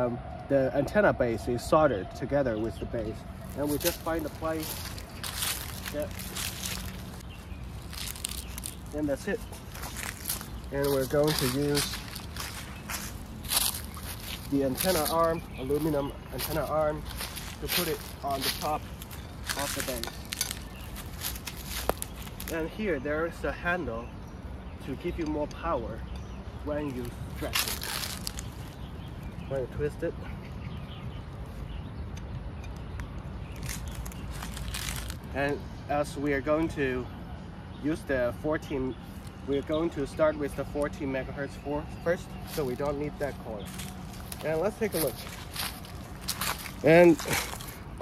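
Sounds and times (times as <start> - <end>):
steady low rumble: 2.8 - 23.4
footsteps on dry leaves: 3.2 - 23.0, 26.7 - 29.6, 33.3 - 35.4, 41.9 - 48.0.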